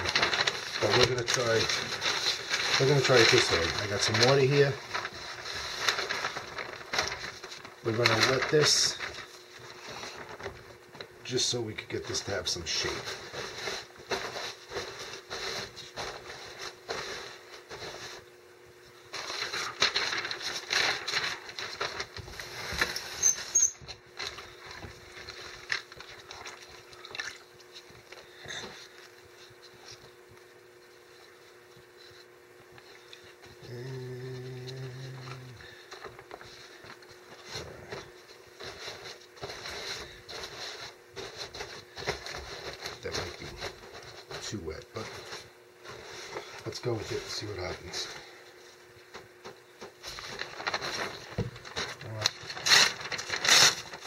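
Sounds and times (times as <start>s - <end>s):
newspaper rustling and crinkling: 0.0s - 54.0s
short low hum: 31.0s - 36.8s.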